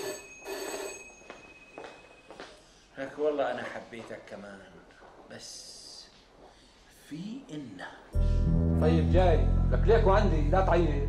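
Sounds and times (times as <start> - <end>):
telephone ringing: 0.0 - 2.4.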